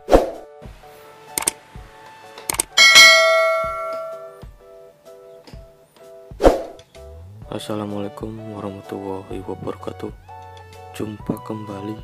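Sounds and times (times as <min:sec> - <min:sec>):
bell ding: 0:02.8 - 0:04.4.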